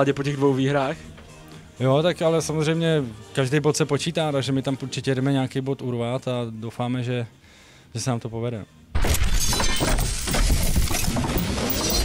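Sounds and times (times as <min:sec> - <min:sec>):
crackling and clinking debris: 0:09.0 - 0:12.0
glass shatter: 0:09.0 - 0:12.0.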